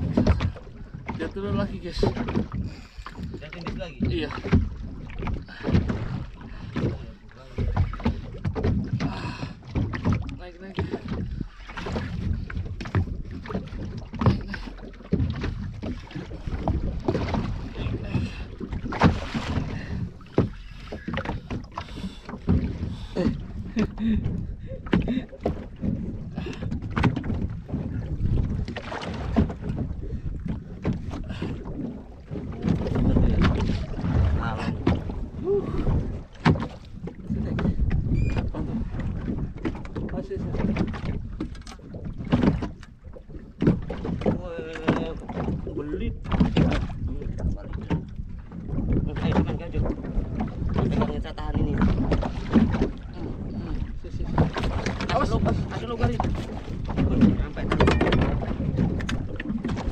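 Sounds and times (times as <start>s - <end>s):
water slapping boat hull: 0.0s - 59.9s
wind buffeting microphone: 0.0s - 59.9s.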